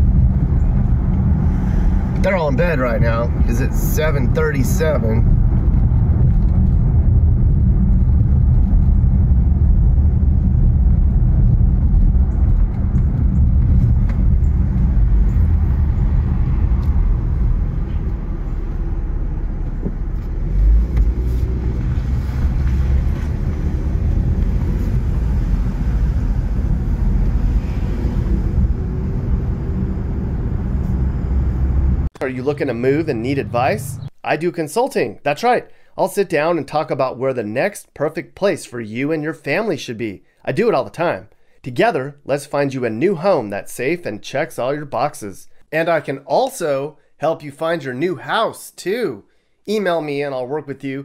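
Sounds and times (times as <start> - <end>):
car rumbling over rough street: 0.0 - 34.2.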